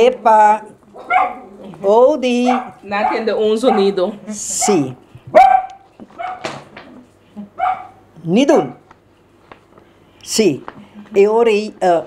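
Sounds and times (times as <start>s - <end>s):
dog barking: 1.0s - 1.5s, 2.4s - 6.6s, 7.6s - 8.8s.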